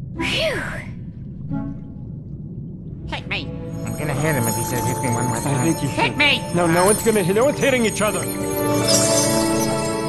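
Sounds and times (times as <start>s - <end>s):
background music: 3.2s - 10.0s.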